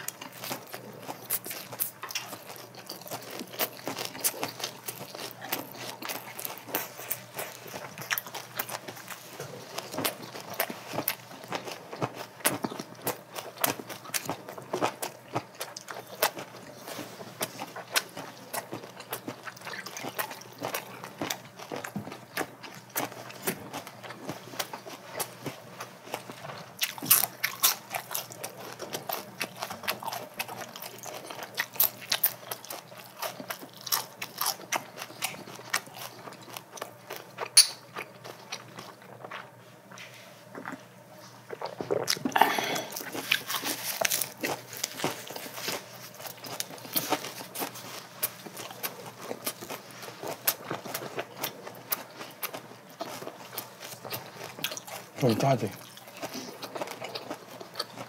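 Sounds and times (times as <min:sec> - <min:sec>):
chewing and crunching food: 0:00.0 - 0:58.0.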